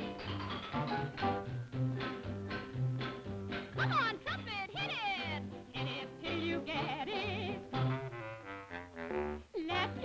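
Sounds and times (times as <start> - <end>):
band accompaniment with bass beat: 0.0 - 3.9
person singing with warbling vibrato: 3.8 - 7.7, 9.5 - 10.0.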